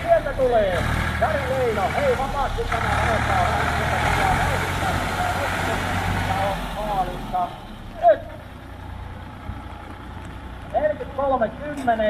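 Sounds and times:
tractor engine passing by: 0.0s - 12.0s.

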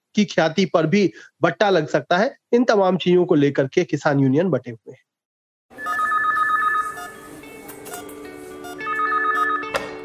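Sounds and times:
electronic telephone ring: 5.8s - 7.3s, 7.9s - 9.8s.

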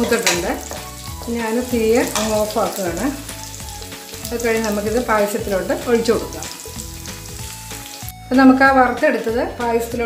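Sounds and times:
nuts sizzling in a pan: 0.0s - 9.9s
background music: 0.0s - 10.0s.

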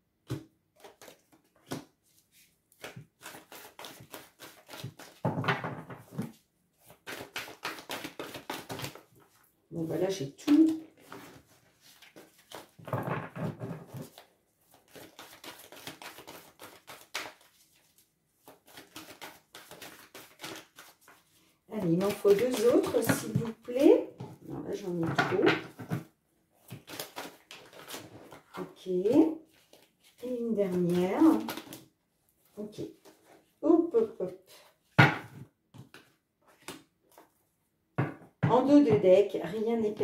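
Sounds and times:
cards being shuffled: 0.3s - 9.4s, 10.4s - 23.8s, 25.3s - 31.9s, 35.8s - 37.4s.

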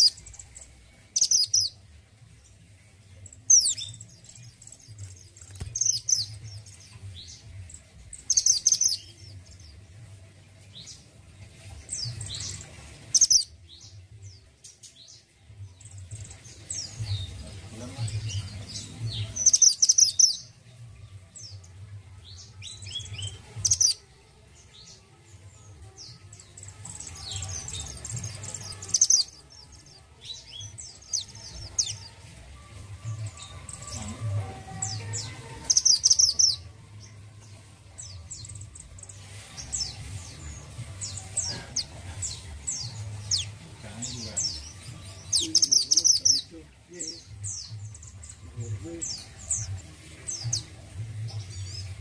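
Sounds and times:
bird chirping high falling calls: 0.0s - 1.8s, 26.1s - 32.2s, 33.1s - 36.7s.

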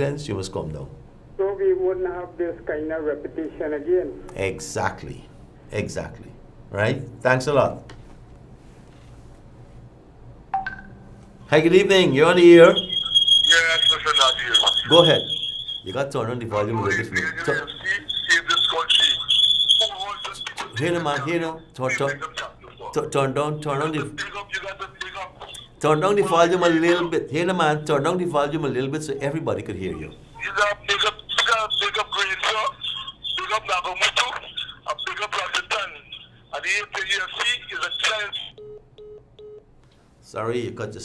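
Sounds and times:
garbled voices on phone line: 1.4s - 4.6s, 11.5s - 38.6s
short call-ended beeps: 10.6s - 21.3s, 37.2s - 39.7s
high-pitched feedback whistle: 11.9s - 21.2s.

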